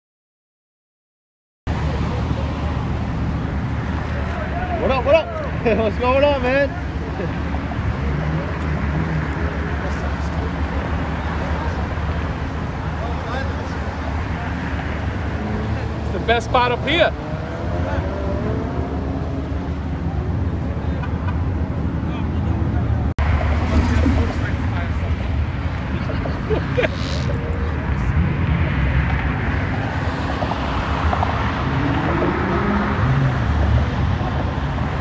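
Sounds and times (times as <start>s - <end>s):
crowd voices: 1.7s - 30.2s
cars idling: 1.7s - 32.0s.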